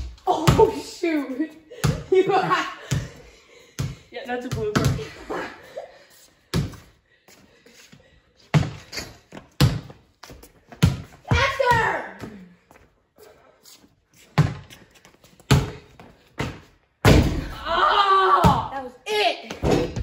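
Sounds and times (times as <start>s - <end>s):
basketball bouncing on concrete: 1.7s - 3.2s, 3.8s - 5.2s, 8.5s - 12.5s, 14.4s - 14.8s, 15.4s - 17.5s.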